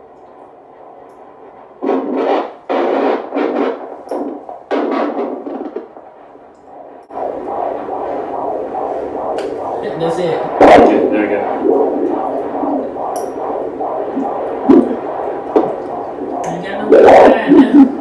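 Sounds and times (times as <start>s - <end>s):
doppler probe whooshing: 0.0s - 18.0s
fetal heartbeat whooshing: 0.0s - 18.0s.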